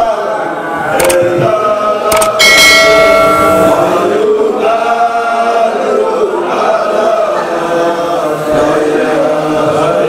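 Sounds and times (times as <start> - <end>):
men chanting devotional song: 0.0 - 10.0
short clicks: 0.9 - 1.3, 2.1 - 2.4.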